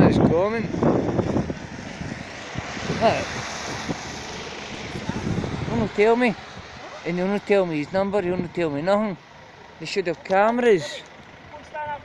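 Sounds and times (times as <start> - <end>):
car tyres hissing on wet road: 1.4 - 7.2.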